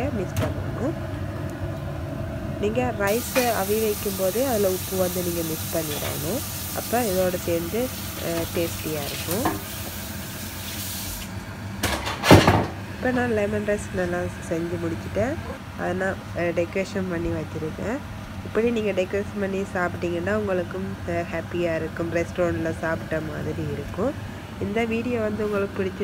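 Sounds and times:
steady hiss: 0:03.1 - 0:11.4.

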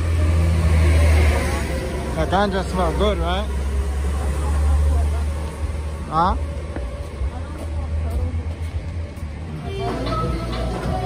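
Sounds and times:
street rumble: 0:00.0 - 0:11.0
faint voices: 0:01.0 - 0:11.0
music: 0:09.5 - 0:11.0.

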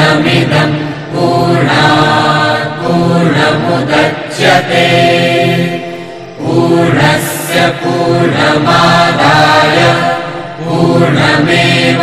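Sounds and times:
voices chanting: 0:00.0 - 0:12.0.

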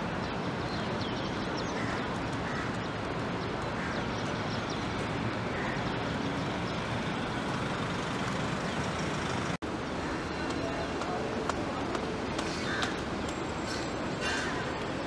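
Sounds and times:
city traffic hum: 0:00.0 - 0:15.0.

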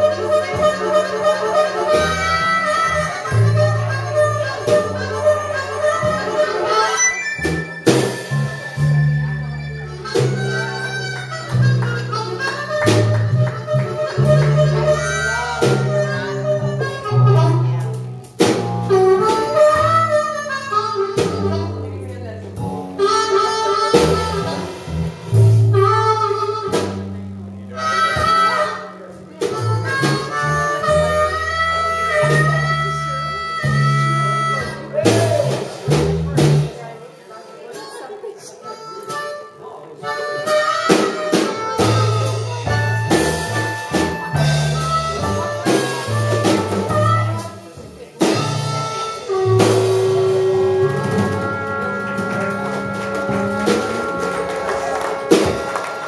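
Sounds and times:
live blues band playing: 0:00.0 - 0:56.0
wailing lead wind instrument: 0:48.4 - 0:56.0.

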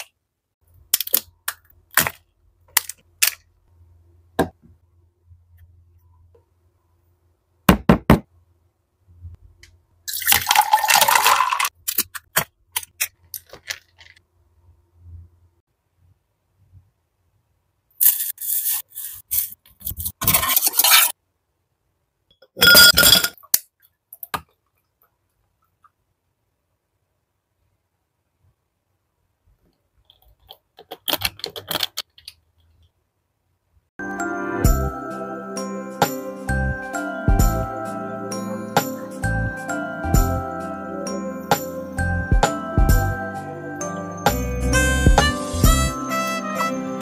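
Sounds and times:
ice cubes clinking into glass jar: 0:10.1 - 0:11.7
glass ringing: 0:22.5 - 0:23.4.

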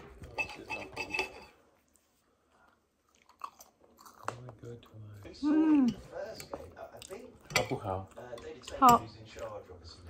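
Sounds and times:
cutlery scraping on ceramic plate: 0:00.0 - 0:01.6.

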